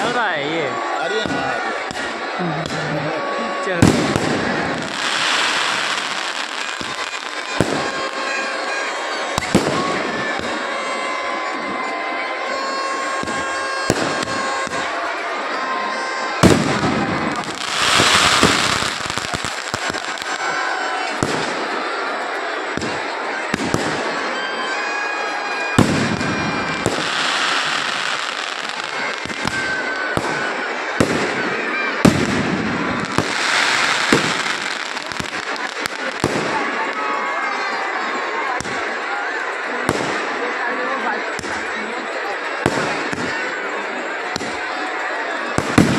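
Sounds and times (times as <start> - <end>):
fireworks bangs: 0.0 - 12.0, 12.6 - 15.2, 16.3 - 37.7, 39.8 - 40.4, 41.3 - 41.7, 42.5 - 43.6, 45.5 - 45.9
crowd voices: 0.0 - 45.9
fireworks crackling: 0.0 - 45.9.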